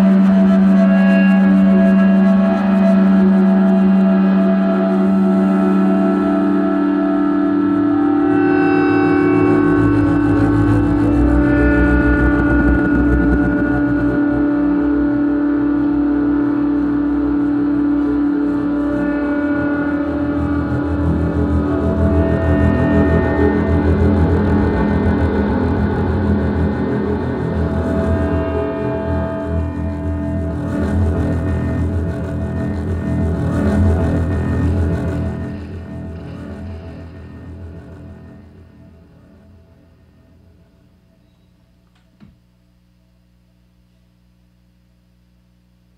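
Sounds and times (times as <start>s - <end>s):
sustained tones: 0.0s - 40.9s
held electronic drone: 0.0s - 41.4s
deep low bass notes: 8.8s - 40.6s.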